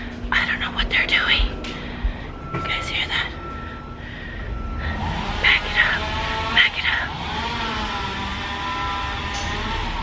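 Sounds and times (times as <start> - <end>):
engine low rumble: 0.0 - 10.0.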